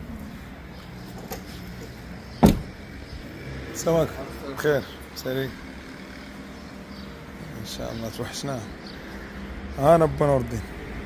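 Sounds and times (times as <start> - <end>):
car door thud: 2.4 - 2.8.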